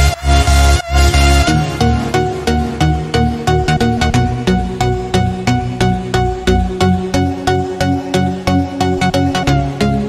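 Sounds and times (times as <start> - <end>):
electronic music with steady beat: 0.0 - 10.0
sustained bass line: 0.0 - 10.0.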